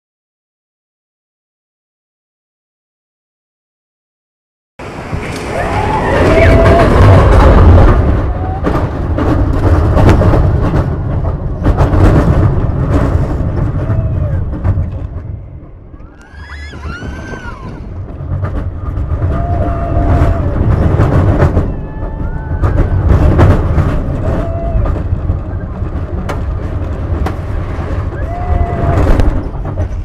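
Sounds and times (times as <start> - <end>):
roller coaster wheels rumbling on track: 4.8 - 30.0
wind on microphone: 4.8 - 30.0
riders shrieking: 5.3 - 7.6, 16.0 - 18.0, 19.1 - 23.3, 28.0 - 29.5.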